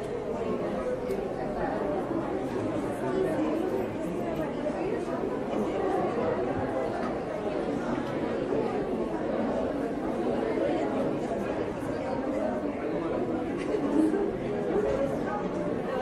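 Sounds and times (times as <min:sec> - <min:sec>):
hubbub of many voices: 0:00.0 - 0:16.0.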